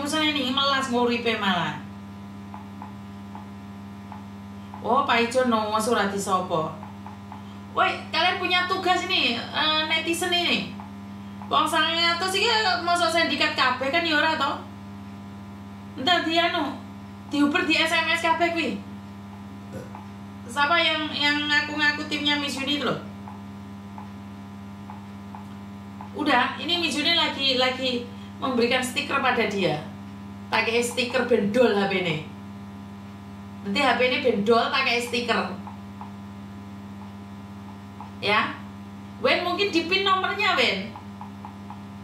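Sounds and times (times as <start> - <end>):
woman speaking: 0.0 - 1.9, 4.8 - 6.9, 7.7 - 10.8, 11.5 - 14.7, 16.0 - 18.9, 20.5 - 23.1, 26.1 - 32.4, 33.6 - 35.7, 38.1 - 41.0
electrical mains hum: 0.0 - 42.0.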